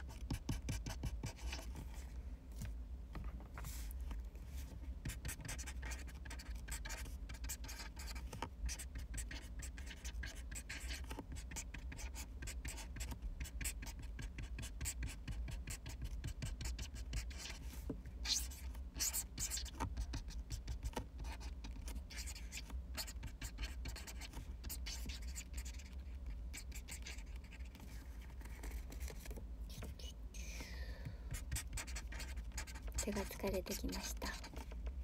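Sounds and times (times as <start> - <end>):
pen writing on paper: 0.0 - 1.7, 5.0 - 17.6, 18.2 - 27.8, 31.3 - 34.7
low steady hum: 0.0 - 35.0.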